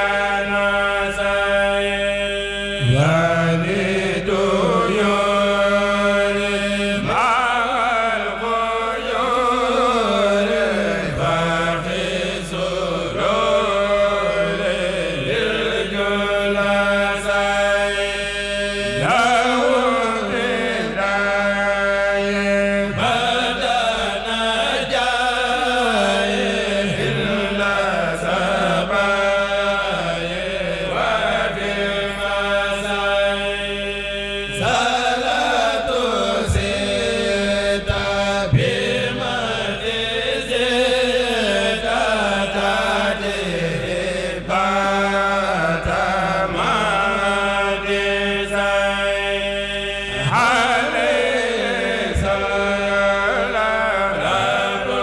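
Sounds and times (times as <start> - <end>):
men chanting into microphones: 0.0 - 55.0.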